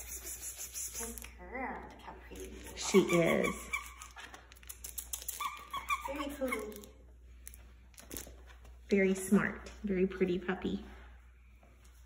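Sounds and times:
puppy whining: 0:02.6 - 0:06.9.

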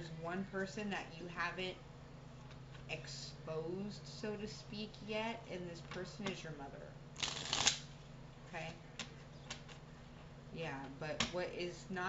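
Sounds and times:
cards being shuffled: 0:07.2 - 0:07.8.

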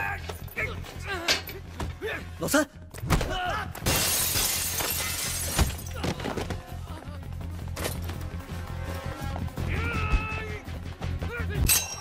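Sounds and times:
glass shattering: 0:03.8 - 0:06.0.

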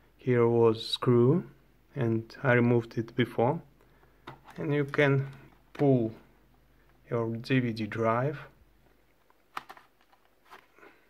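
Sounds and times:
plastic clicks: 0:08.8 - 0:10.7.

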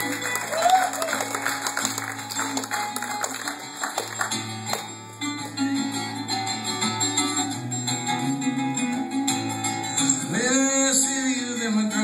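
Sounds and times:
bouzouki strummed: 0:01.2 - 0:12.0.

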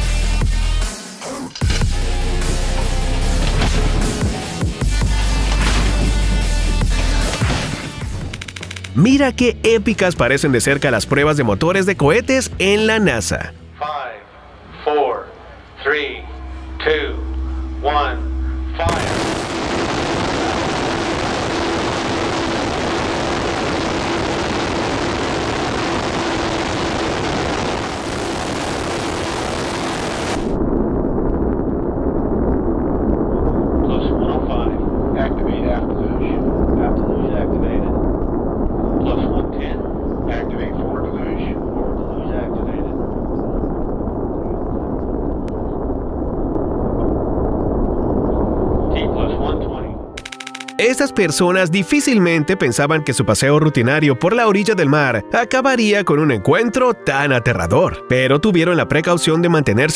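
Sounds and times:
distant deep rumble: 0:14.3 - 0:50.2
rocket booster roaring: 0:16.4 - 0:50.2.

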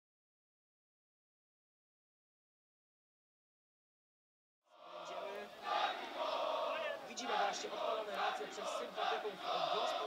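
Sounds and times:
crowd chanting: 0:04.7 - 0:10.0.

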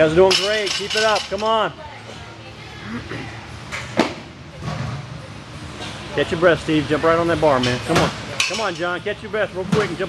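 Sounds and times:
faint voices: 0:01.8 - 0:03.7.

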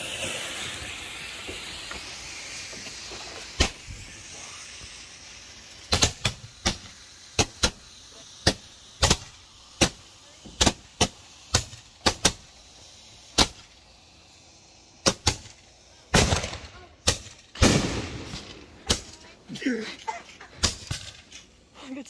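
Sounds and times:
loud firework blasts: 0:00.0 - 0:21.8.

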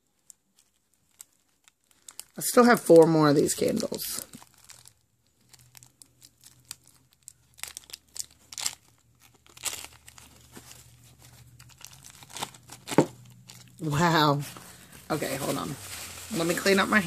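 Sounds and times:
plastic bag crinkling and tearing: 0:00.0 - 0:17.0.

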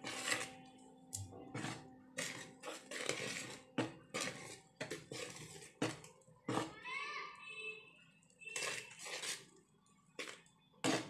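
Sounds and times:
whisk scraping a plastic bowl: 0:00.0 - 0:00.6, 0:01.4 - 0:06.7, 0:08.5 - 0:09.5, 0:10.2 - 0:11.0.

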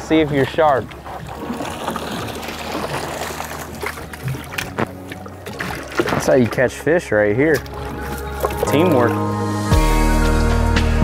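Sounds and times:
water dripping and splashing: 0:00.0 - 0:09.2
background music: 0:00.5 - 0:11.0
net splashing onto water: 0:01.0 - 0:06.6.

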